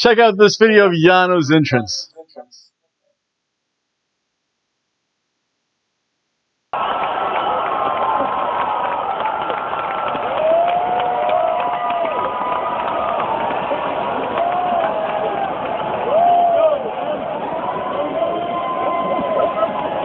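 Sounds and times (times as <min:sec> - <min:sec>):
arena crowd cheering and shouting: 0:06.8 - 0:20.0.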